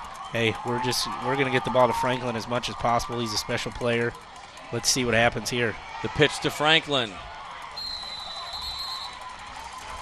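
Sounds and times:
low stadium crowd noise: 0.0 - 10.0
referee's whistle: 7.8 - 9.2.

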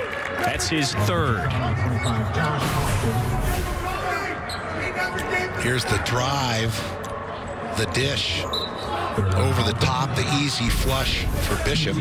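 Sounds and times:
voices in arena: 0.0 - 12.0
sneaker squeak: 4.4 - 4.8, 8.4 - 8.9.

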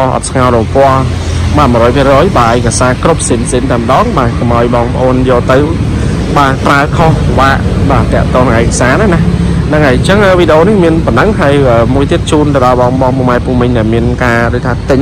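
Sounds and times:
person talking: 0.0 - 15.0
van engine idling: 0.0 - 15.0.

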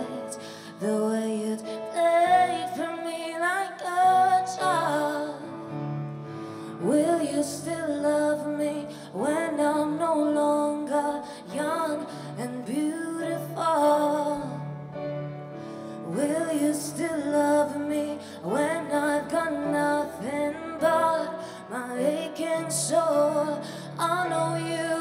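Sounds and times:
woman singing a slow song: 0.0 - 5.7, 6.7 - 14.8, 16.0 - 25.0.

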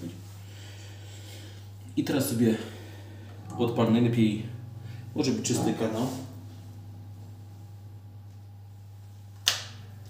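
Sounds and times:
guitar amplifier humming: 0.0 - 10.0.

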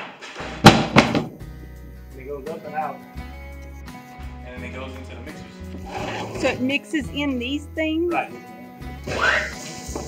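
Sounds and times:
loud sharp knocks: 0.0 - 1.4.

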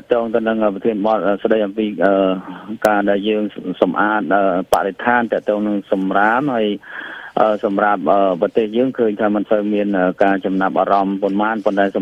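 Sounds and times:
man talking on radio: 0.0 - 12.0.

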